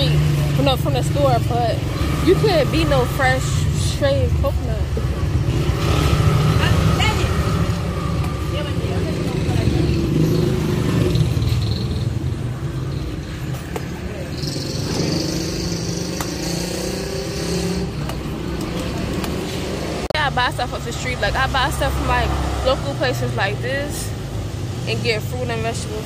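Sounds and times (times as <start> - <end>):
low rumble of road traffic: 0.0 - 26.0.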